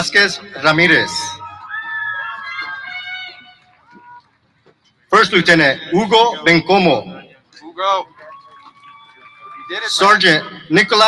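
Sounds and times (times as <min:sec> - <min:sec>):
man speaking over public address: 0:00.0 - 0:01.4, 0:05.1 - 0:08.3, 0:09.6 - 0:11.0.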